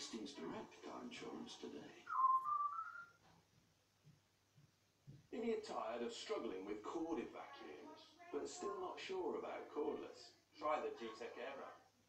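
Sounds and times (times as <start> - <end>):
whistled jingle through tv speaker: 2.1 - 3.1.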